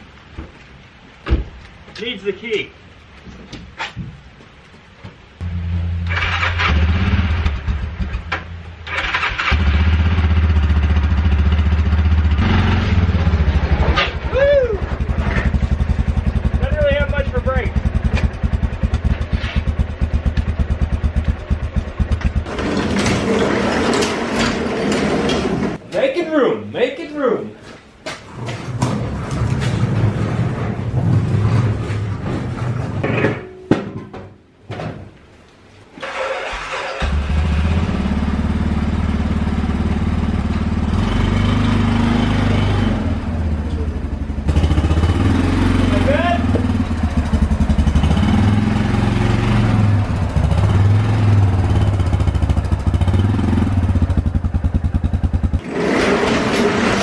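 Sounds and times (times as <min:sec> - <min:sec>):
quad bike engine starting and revving: 0:05.4 - 0:25.8, 0:36.0 - 0:57.0.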